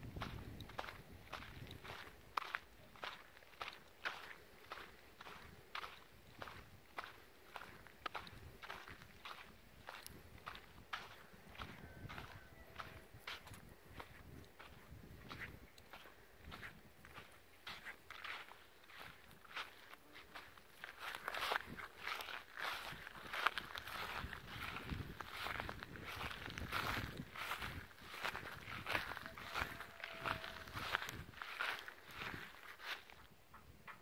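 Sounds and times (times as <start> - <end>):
footsteps walking through grass: 0.2 - 33.3.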